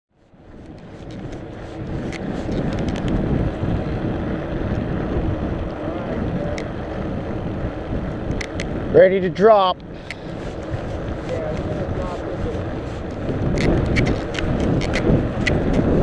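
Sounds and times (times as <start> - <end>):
bike clicks and rattles: 0.2 - 16.0
tyres rumbling on asphalt: 0.2 - 16.0
wind rushing over microphone: 0.2 - 16.0.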